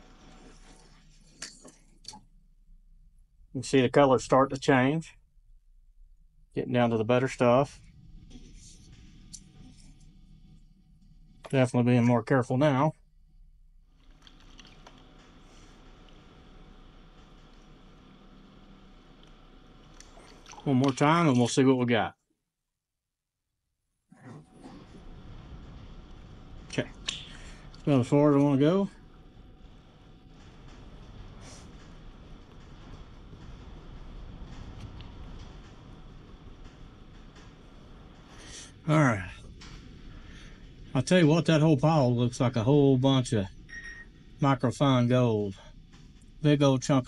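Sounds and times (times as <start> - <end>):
water swishing in a pan: 20.0 - 21.4.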